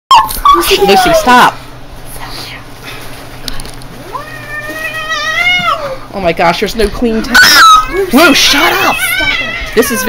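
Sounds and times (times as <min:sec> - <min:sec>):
cat yowling: 0:04.0 - 0:06.0, 0:07.2 - 0:10.0.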